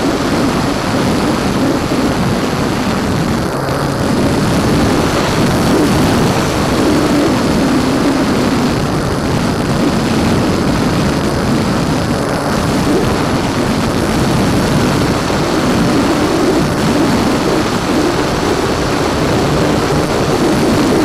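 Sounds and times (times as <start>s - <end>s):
electric motor and propeller drone: 0.0s - 21.0s
wind rush: 0.0s - 21.0s.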